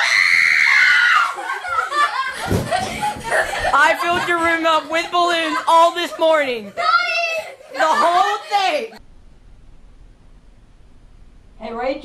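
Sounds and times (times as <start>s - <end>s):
girl screaming: 0.0s - 1.4s
girl laughing: 1.2s - 9.0s.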